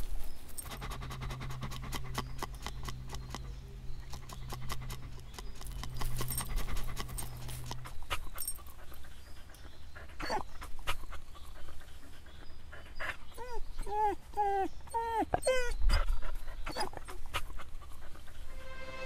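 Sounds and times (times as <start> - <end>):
dog panting: 0.6 - 18.5
dog whimpering: 10.2 - 10.5, 13.0 - 17.2.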